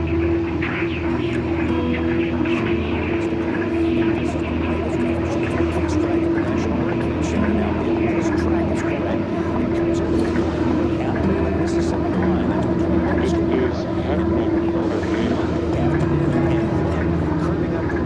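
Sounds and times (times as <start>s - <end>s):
droning hum: 0.0s - 18.0s
indistinct voices: 0.0s - 18.0s.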